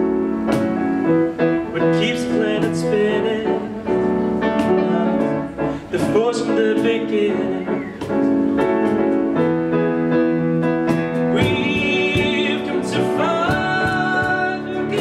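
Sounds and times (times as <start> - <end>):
bass: 0.0 - 15.0
keyboard chords: 0.0 - 15.0
male voice singing: 1.7 - 3.9, 4.6 - 8.0, 11.2 - 15.0.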